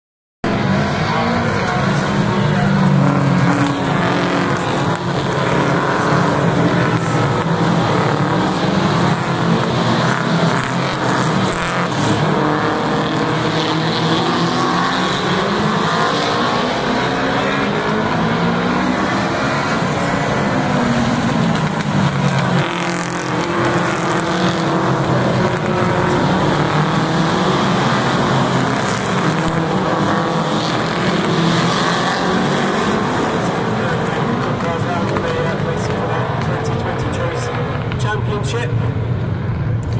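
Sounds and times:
race car engines: 0.4 - 39.9.

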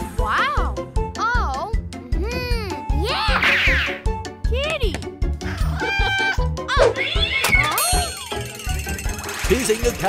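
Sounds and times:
cartoon cat meowing: 3.1 - 4.0.

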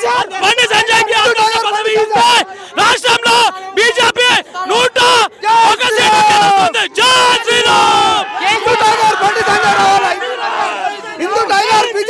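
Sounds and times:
crowd of men shouting: 0.0 - 12.0.

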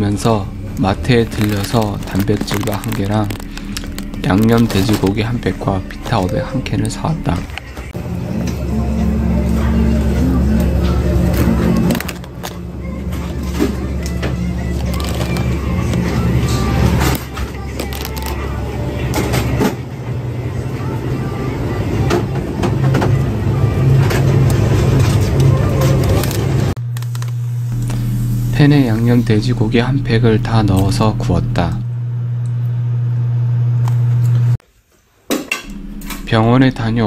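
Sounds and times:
indistinct voices: 0.0 - 26.7, 27.6 - 32.0, 35.6 - 37.0
music with low notes: 0.0 - 26.7, 27.4 - 33.1, 35.6 - 37.0.

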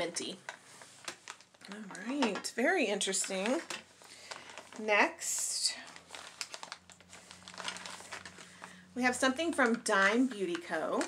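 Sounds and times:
packaging crinkling and rustling: 0.0 - 11.0.

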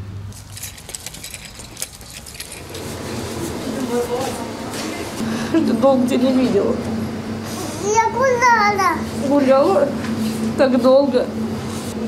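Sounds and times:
light clinks: 0.4 - 2.9
people greeting each other: 2.5 - 10.5
high excited voice: 7.8 - 9.0.

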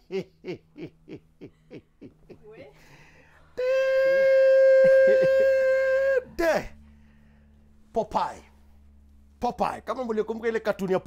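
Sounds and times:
man laughing: 0.0 - 2.8, 3.6 - 6.8.

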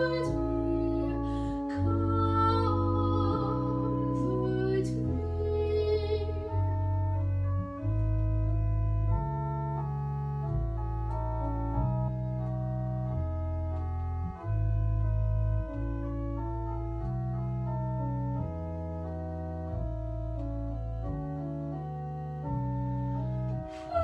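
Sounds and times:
organ playing sustained chords: 0.0 - 24.0.

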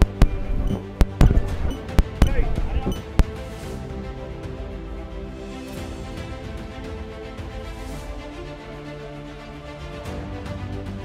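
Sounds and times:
background music: 0.0 - 11.0
voices: 0.2 - 3.2.

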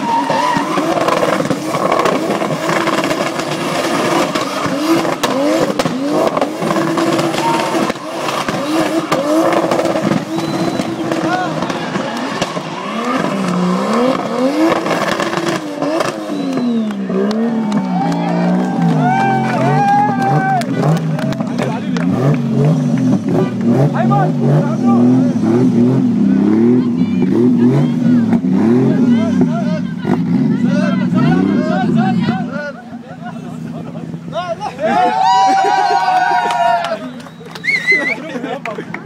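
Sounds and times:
car engine revving: 0.0 - 34.5
tyres squealing on asphalt: 0.0 - 38.6.

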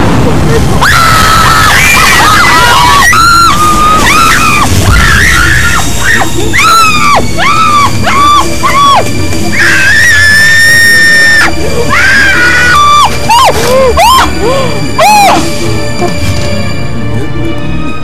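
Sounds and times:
women screaming and wailing: 0.0 - 16.2
background music: 0.0 - 18.0.

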